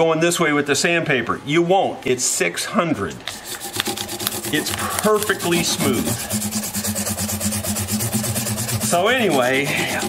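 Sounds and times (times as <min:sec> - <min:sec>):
sandpaper rasping on guitar frets: 0:03.3 - 0:10.0.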